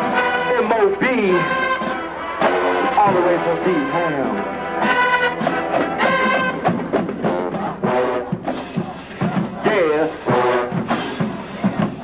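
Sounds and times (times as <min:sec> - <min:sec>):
brass horns: 0:00.0 - 0:12.0
marching drums: 0:00.0 - 0:12.0.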